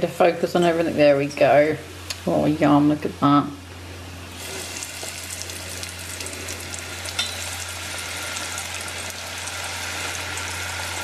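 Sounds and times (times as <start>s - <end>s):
deep-frying crackling sizzle: 4.1s - 11.0s.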